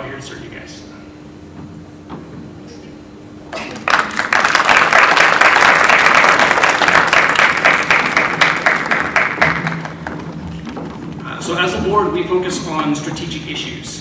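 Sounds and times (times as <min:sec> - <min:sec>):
audience applauding: 0:03.5 - 0:11.2.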